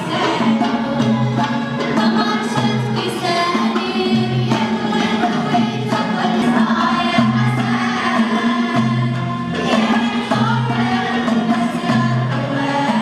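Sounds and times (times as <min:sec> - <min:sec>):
group of voices singing: 0:00.0 - 0:13.0
violins oud and lute playing: 0:00.0 - 0:13.0.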